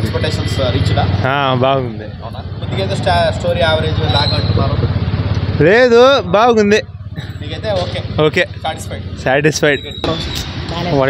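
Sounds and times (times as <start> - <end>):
motorcycle engine idling: 0.0 - 11.0
man talking: 5.6 - 11.0.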